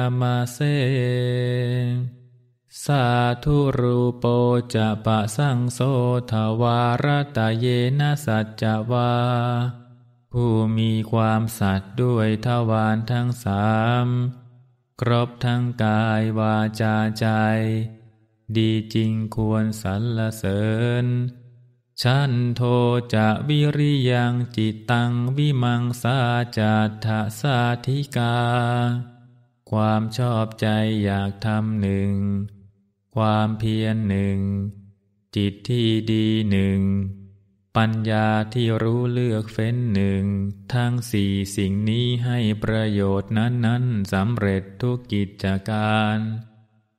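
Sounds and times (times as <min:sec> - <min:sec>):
monk chanting verse: 0:00.0 - 0:21.4, 0:22.0 - 0:32.6, 0:33.2 - 0:37.2, 0:37.8 - 0:46.5.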